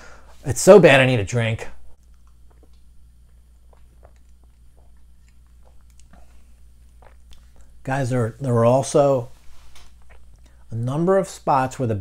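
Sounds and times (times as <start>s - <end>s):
low steady hum: 0.0s - 12.0s
person sipping and swallowing: 2.0s - 7.8s, 9.6s - 10.7s.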